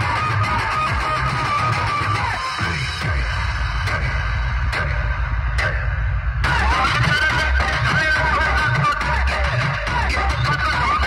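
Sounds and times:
loud dj music with heavy bass: 0:00.0 - 0:11.0.

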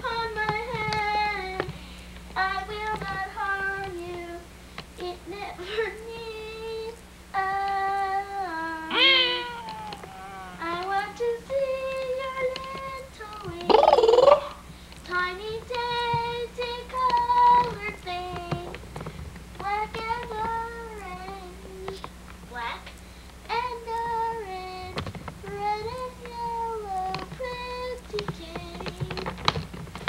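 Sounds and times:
girl singing: 0:00.0 - 0:01.8, 0:02.4 - 0:18.8, 0:19.6 - 0:29.6.

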